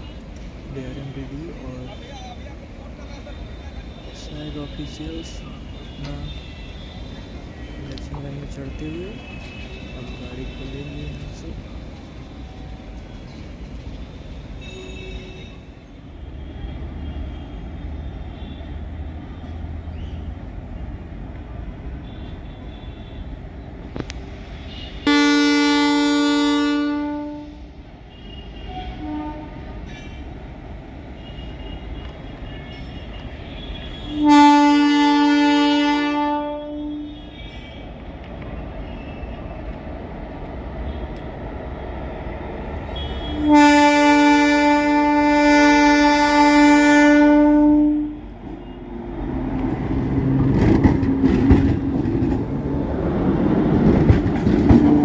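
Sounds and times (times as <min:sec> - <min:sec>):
vehicle horn blasts: 0:24.7 - 0:29.8, 0:33.6 - 0:37.8, 0:43.0 - 0:48.8.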